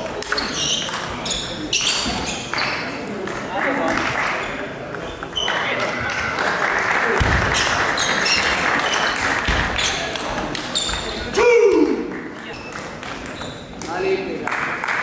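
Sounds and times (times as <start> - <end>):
table tennis balls clicking: 0.0 - 6.2, 7.4 - 11.2, 12.3 - 14.0
voices in a large hall: 0.0 - 15.0.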